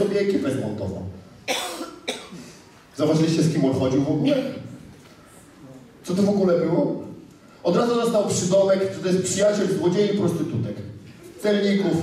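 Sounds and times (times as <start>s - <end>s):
man coughing: 1.4s - 2.5s.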